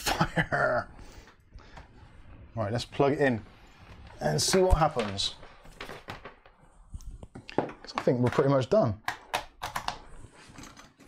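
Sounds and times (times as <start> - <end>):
cables and objects clattering on desk: 3.9 - 11.0.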